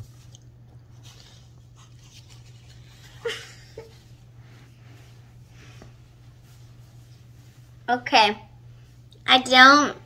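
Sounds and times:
person chewing juicy fruit: 0.0s - 3.0s.

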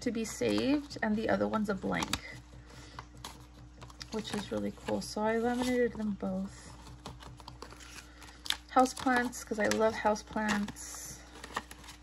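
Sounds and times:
plastic cards being handled: 0.0s - 12.0s.

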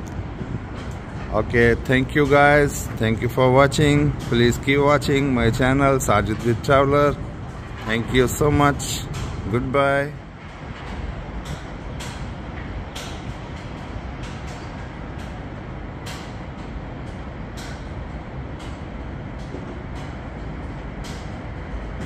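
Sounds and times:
distant city traffic rumble: 0.0s - 22.0s.

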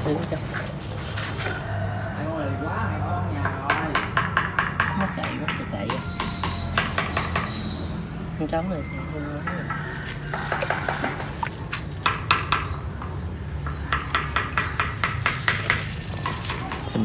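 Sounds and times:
water splashing in a tank: 9.6s - 12.8s, 13.7s - 17.0s.

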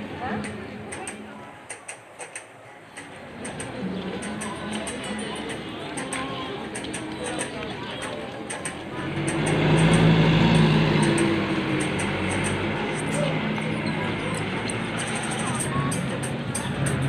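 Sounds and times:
minivan driving past: 8.9s - 15.0s.

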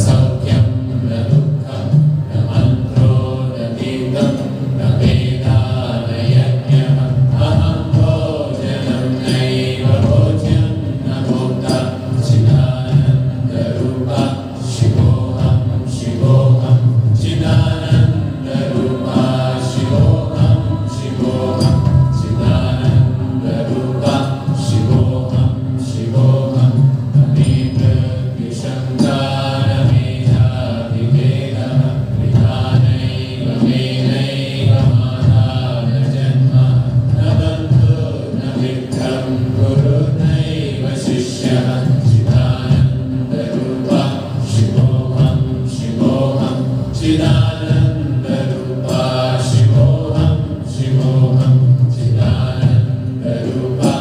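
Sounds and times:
steady low drone: 0.0s - 54.0s
voices chanting together: 0.0s - 54.0s.

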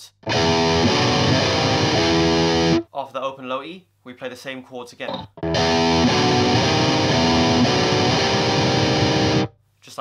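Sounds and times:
distorted electric guitar riff: 0.0s - 2.8s, 5.1s - 9.5s.

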